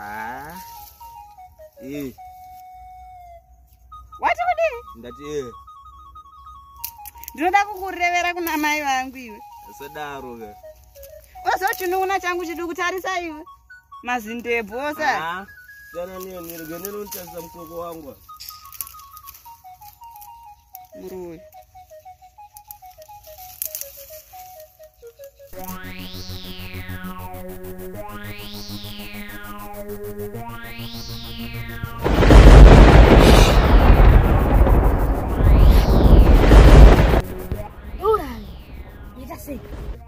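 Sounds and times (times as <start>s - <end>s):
simple high background tune: 0.0s - 32.0s
rumbling thunder: 31.8s - 40.0s.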